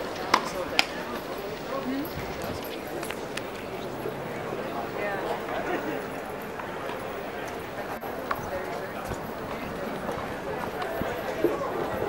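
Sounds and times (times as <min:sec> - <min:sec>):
spectator chatter: 0:00.0 - 0:12.0.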